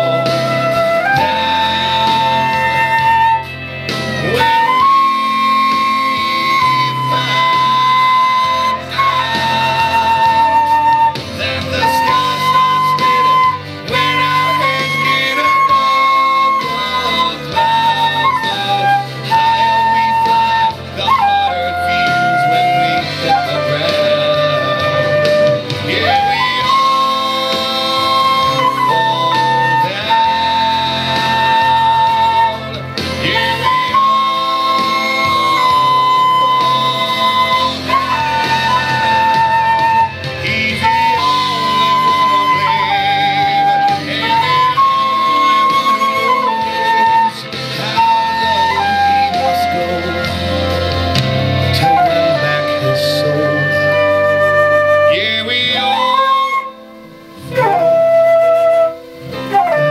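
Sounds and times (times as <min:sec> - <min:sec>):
backing track music: 0:00.0 - 0:59.9
flute playing slow melody: 0:00.0 - 0:59.9.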